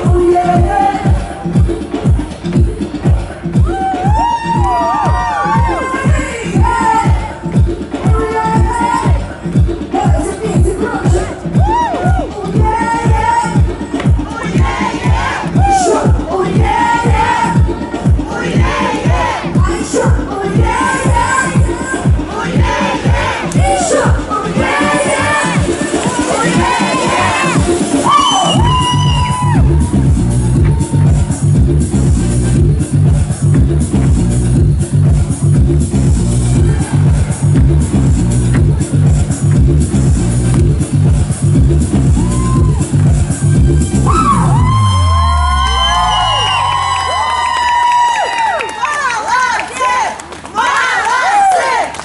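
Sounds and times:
pulsing electronic bass beat: 0.0s - 48.2s
crowd cheering and shouting: 3.0s - 9.4s, 10.0s - 33.6s, 36.2s - 39.1s, 41.5s - 52.0s
crowd cheering and screaming: 3.6s - 5.9s, 11.6s - 12.4s, 26.5s - 31.6s, 42.0s - 43.1s, 44.0s - 52.0s.

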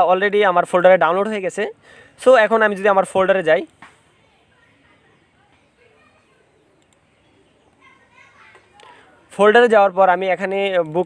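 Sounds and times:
faint high-pitched voices: 3.9s - 9.5s.

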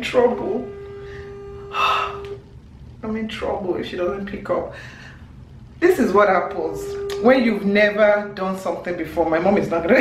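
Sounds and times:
phone ringback tone: 0.0s - 2.4s, 6.0s - 8.4s.

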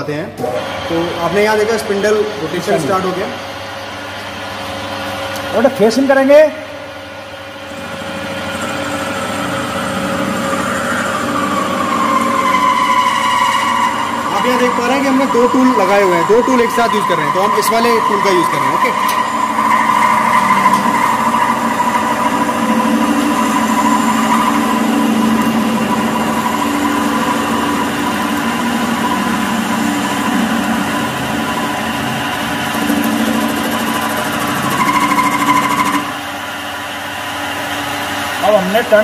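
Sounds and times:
lathe machine hum: 0.0s - 39.0s.

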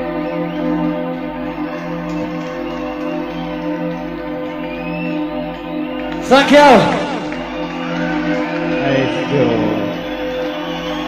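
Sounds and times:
sustained synthesizer chords: 0.0s - 11.0s.

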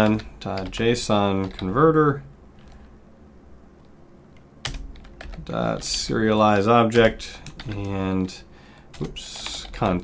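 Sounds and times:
computer keyboard key clicks: 7.0s - 8.0s.

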